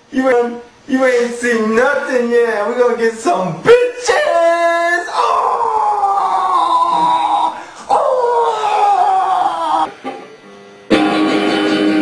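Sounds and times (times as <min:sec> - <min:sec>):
man imitating dog howling: 0:03.9 - 0:09.9.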